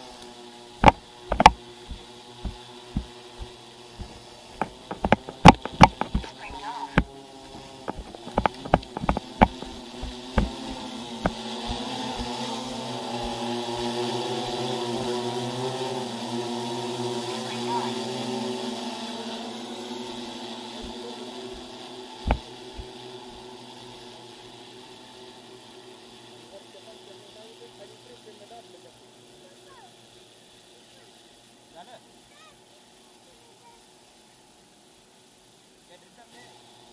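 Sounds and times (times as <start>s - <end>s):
sharp knocks: 0.8s - 7.1s, 7.9s - 12.4s, 13.2s - 14.0s, 22.2s - 22.4s
drone propellers humming: 0.8s - 16.2s.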